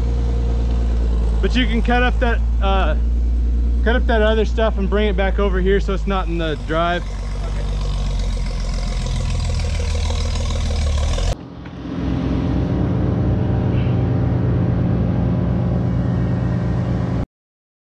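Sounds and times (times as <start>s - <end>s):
engine running: 0.0s - 17.2s
low pulsing engine: 0.0s - 17.3s.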